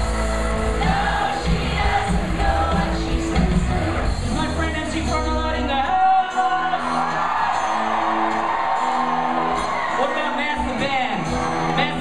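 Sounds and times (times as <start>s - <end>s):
live rock band playing: 0.0s - 12.0s
crowd cheering: 5.9s - 12.0s.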